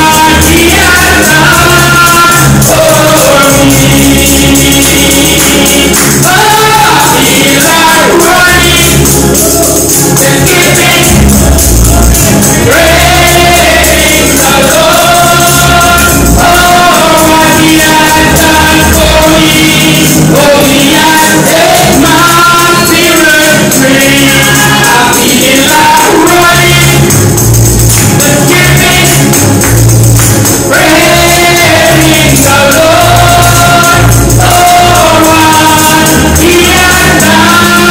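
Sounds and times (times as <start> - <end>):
lead singer and choir singing: 0.0 - 27.2, 28.0 - 37.9
band with percussion: 0.0 - 37.9.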